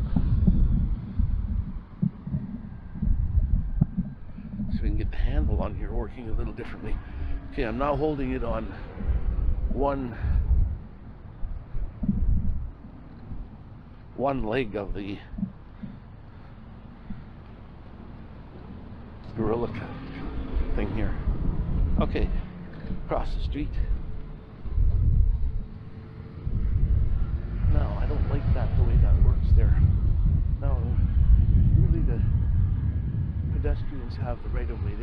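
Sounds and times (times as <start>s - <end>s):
faint street traffic: 0.0s - 12.0s, 12.6s - 35.0s
faint steady hum: 0.0s - 35.0s
wind buffeting microphone: 0.0s - 35.0s.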